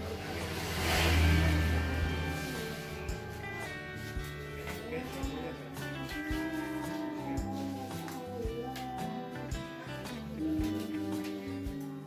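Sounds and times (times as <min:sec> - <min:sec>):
motor vehicle passing by: 0:00.0 - 0:04.9.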